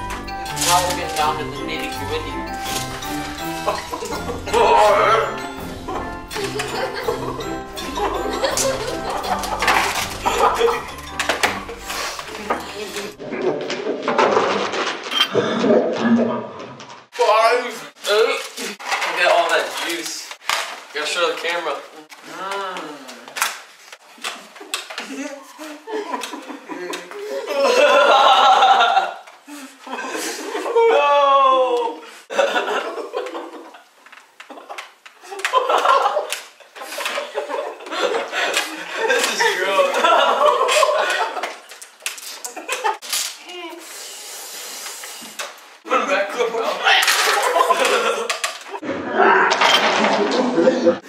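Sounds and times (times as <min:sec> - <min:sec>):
men laughing and calling out: 0:03.4 - 0:10.9, 0:29.8 - 0:33.6
boys laughing loudly: 0:03.6 - 0:11.0, 0:24.6 - 0:31.2, 0:32.3 - 0:33.8, 0:34.5 - 0:41.7, 0:42.4 - 0:43.0, 0:46.8 - 0:48.7, 0:50.1 - 0:51.0.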